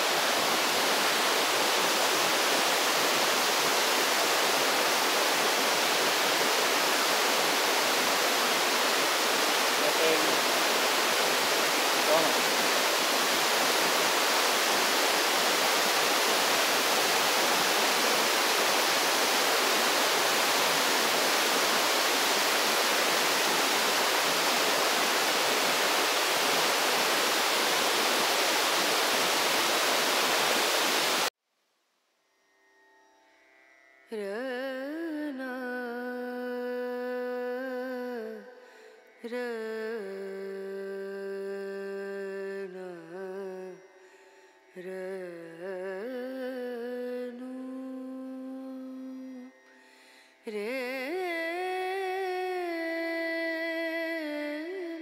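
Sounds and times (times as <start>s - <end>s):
waterfall rushing over rock: 0.0s - 31.3s.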